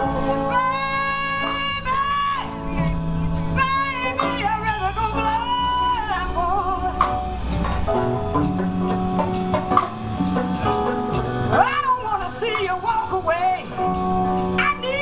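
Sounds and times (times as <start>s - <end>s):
woman singing: 0.0s - 7.2s, 11.5s - 15.0s
blues band playing: 0.0s - 15.0s.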